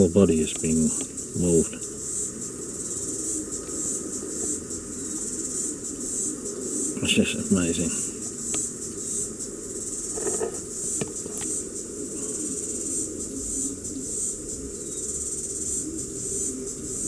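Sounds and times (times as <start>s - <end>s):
insects chirring: 0.0s - 17.0s.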